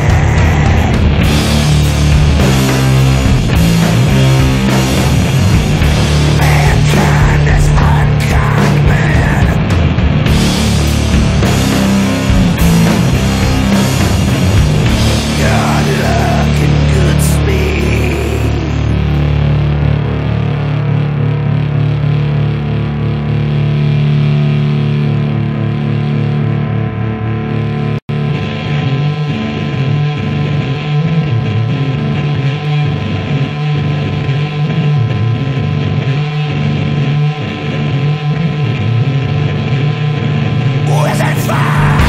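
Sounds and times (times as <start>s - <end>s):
distorted guitar and bass drone: 0.0s - 42.0s
distorted guitar riffing: 0.0s - 42.0s.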